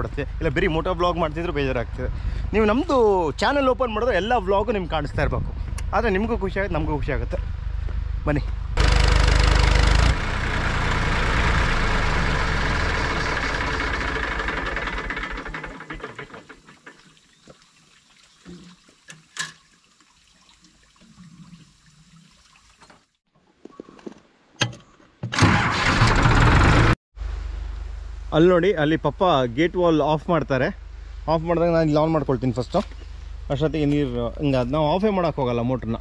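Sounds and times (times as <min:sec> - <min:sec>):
tractor engine running loudly: 0:08.8 - 0:16.5, 0:25.4 - 0:27.0.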